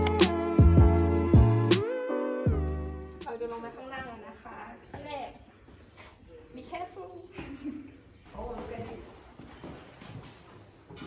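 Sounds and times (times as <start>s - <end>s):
footsteps on stone floor: 3.3s - 11.0s.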